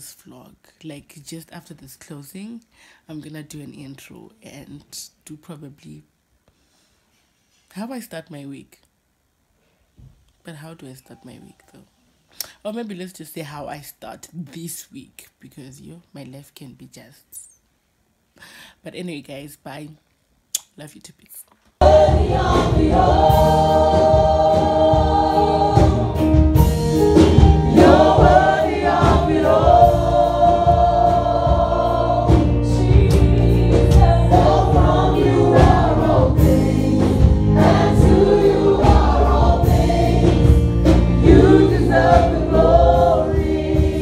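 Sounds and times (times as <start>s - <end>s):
band with bass and drums: 21.8s - 44.0s
gospel choir singing: 21.8s - 44.0s.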